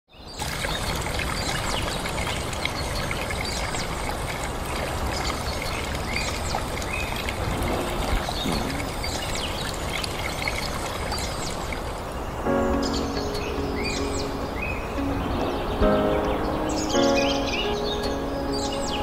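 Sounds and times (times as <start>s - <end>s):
stream splashing over stones: 0.2s - 19.0s.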